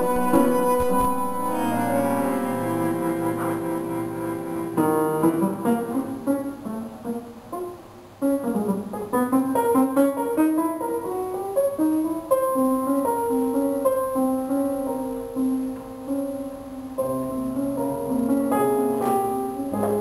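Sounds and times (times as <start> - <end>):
bandoneon melody: 0.0 - 12.1
piano: 0.0 - 20.0.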